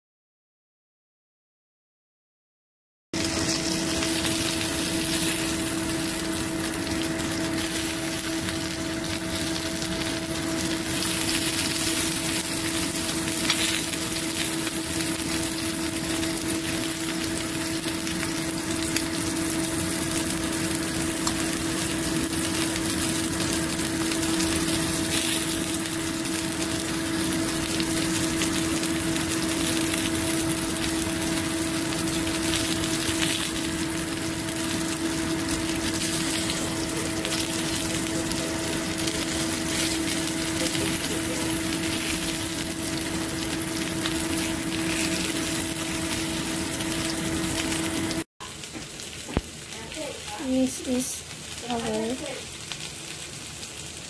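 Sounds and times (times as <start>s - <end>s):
constant hum: 3.2s - 48.6s
kebabs sizzling on a grill pan: 3.2s - 54.0s.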